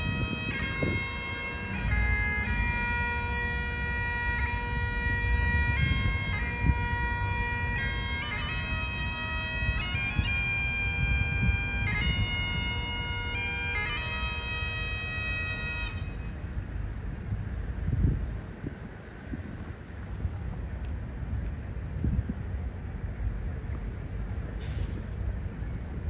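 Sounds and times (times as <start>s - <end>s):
wind rumbling on microphone: 0.0s - 13.5s, 15.1s - 26.0s
bagpipe playing a tune: 0.0s - 16.4s.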